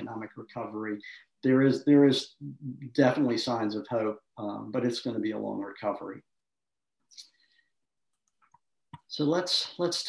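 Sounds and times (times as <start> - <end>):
speech: 0.0 - 6.3, 9.0 - 10.0.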